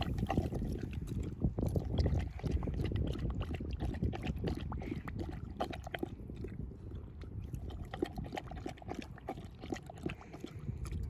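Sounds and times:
dog's mouth smacking and dripping: 0.0s - 11.0s.

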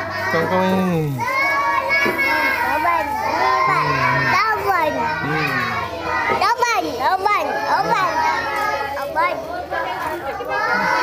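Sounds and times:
young children chattering: 0.0s - 11.0s.

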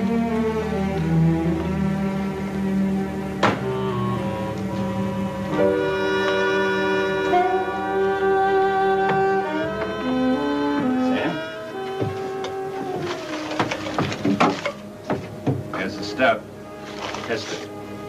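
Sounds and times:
orchestral strings sustained chords: 0.0s - 18.0s.

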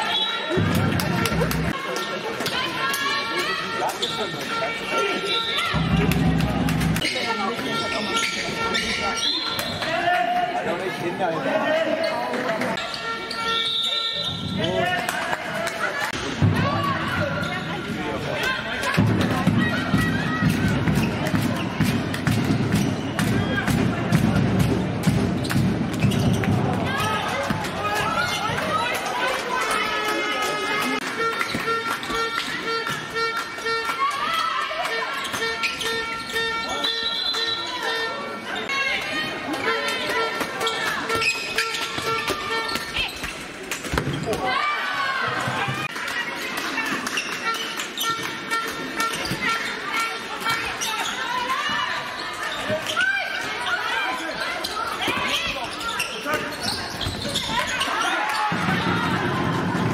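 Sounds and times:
shoes squeaking on floor: 3.5s - 6.3s, 6.9s - 9.9s, 12.0s - 14.9s, 25.4s - 28.9s, 31.1s - 44.3s, 46.7s - 58.8s.

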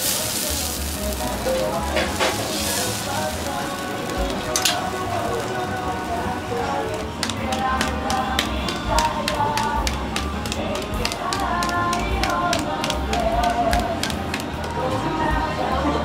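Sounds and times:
music: 0.0s - 16.0s
voices: 0.0s - 16.0s
hands slapping raw meat patty: 7.2s - 14.8s.

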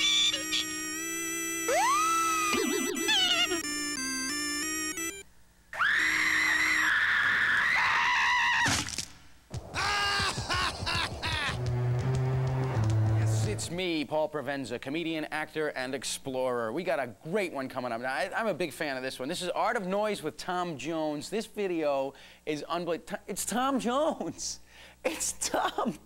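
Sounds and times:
long wavering high tone: 0.0s - 5.2s
synthesizer music: 0.0s - 5.2s, 11.5s - 13.8s
rising gliding tone: 11.5s - 13.6s.

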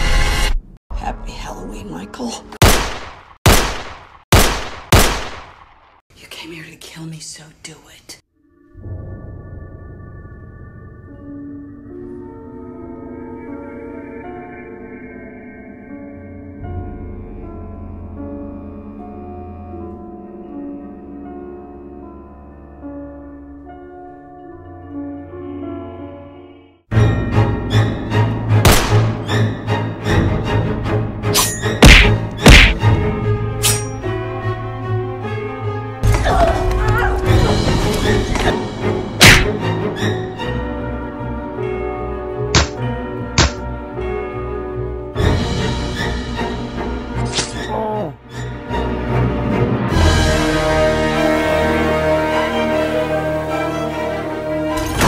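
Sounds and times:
gunshot cracks: 2.6s - 5.8s, 28.7s - 29.2s, 31.8s - 32.8s, 39.2s - 39.6s
orchestral music: 8.5s - 55.0s
heavy thuds: 31.8s - 32.8s.

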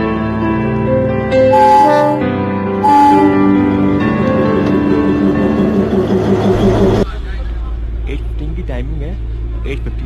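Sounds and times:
diesel locomotive engine drone: 0.0s - 10.0s.

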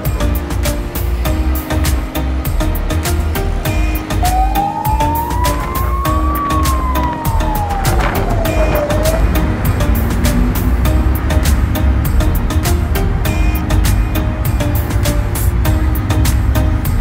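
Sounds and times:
background music with beat: 0.0s - 17.0s
siren wailing: 4.2s - 9.6s.

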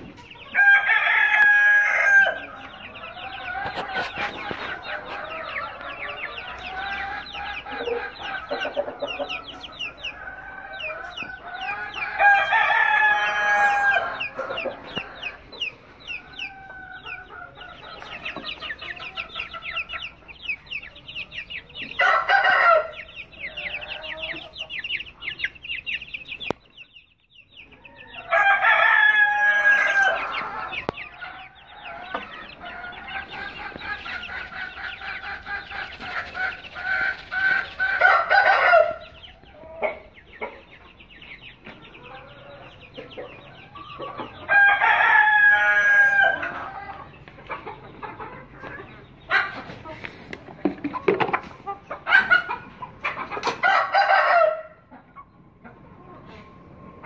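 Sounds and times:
chickens clucking: 0.0s - 57.0s
chicks peeping: 0.0s - 57.0s
rooster crowing: 0.5s - 3.8s, 10.0s - 14.7s, 22.0s - 24.4s, 27.9s - 33.3s, 37.9s - 39.1s, 44.5s - 47.0s, 53.6s - 54.8s.

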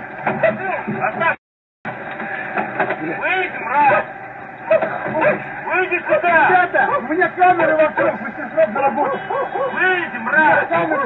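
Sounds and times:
men shouting angrily: 4.7s - 11.0s.

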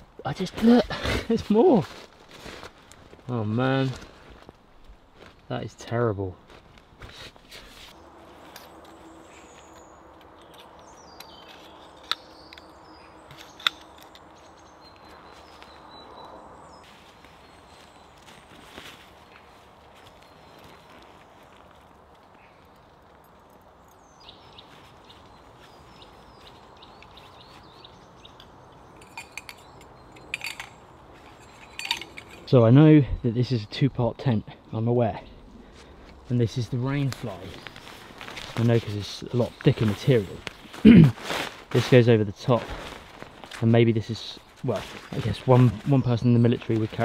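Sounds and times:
footsteps on leaf litter: 1.4s - 4.6s, 16.8s - 22.2s, 36.8s - 47.0s
metal tent poles clinking: 13.3s - 14.6s, 28.8s - 32.6s
rustling: 35.6s - 47.0s.

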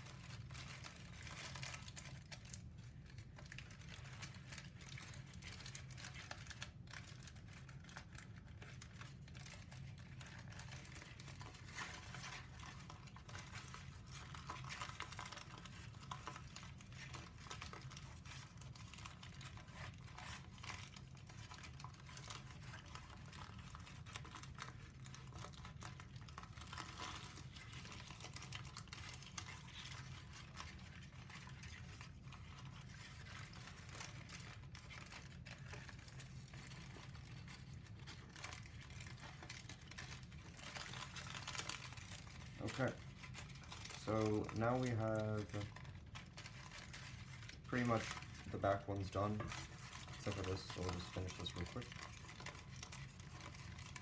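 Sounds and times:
paper crinkling and rustling: 0.0s - 54.0s.

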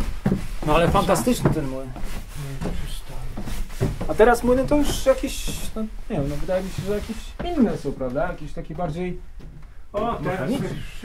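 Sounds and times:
low talk: 10.0s - 11.0s.

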